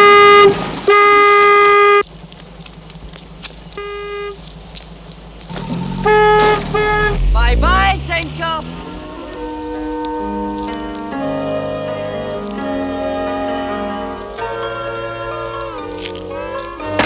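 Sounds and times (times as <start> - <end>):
car horn honking: 0.0 - 2.0, 3.8 - 4.4, 5.5 - 14.5
person shouting: 6.8 - 8.8.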